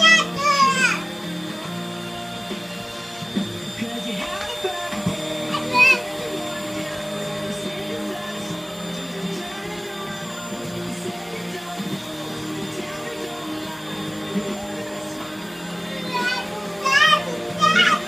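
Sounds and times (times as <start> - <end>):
child's voice: 0.0 - 1.1, 5.5 - 6.6, 16.0 - 18.0
vacuum cleaner motor hum: 0.0 - 18.0.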